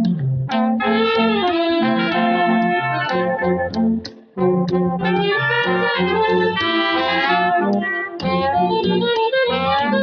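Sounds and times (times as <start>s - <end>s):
tuba bass notes: 0.0s - 10.0s
brass band playing: 0.8s - 3.7s, 4.8s - 8.8s.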